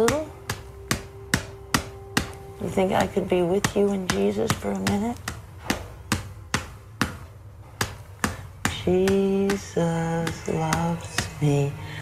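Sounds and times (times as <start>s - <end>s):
hand tapping sharply: 0.0s - 11.4s.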